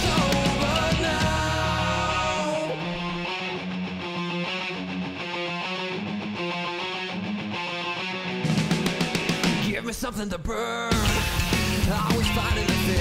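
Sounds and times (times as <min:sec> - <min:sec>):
rock band playing: 0:00.0 - 0:10.1, 0:10.9 - 0:13.0
electric guitar choppy riff: 0:00.0 - 0:13.0.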